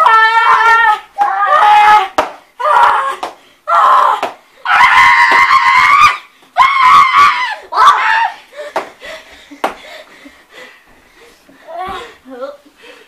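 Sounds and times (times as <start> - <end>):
children screaming: 0.0 - 8.4.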